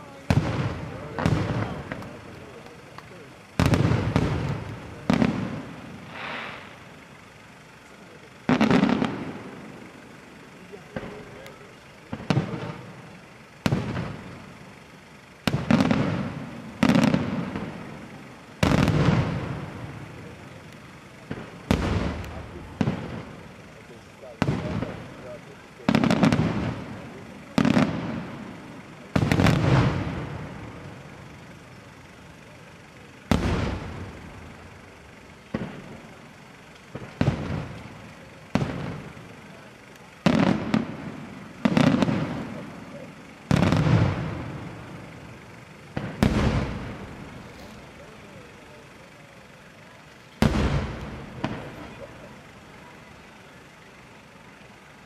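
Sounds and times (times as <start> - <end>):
firework shells bursting: 0.2 - 55.0.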